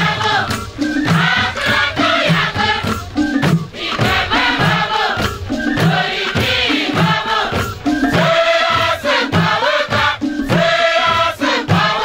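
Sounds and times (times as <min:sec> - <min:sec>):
hand drums: 0:00.0 - 0:12.0
youth choir singing: 0:00.0 - 0:12.0.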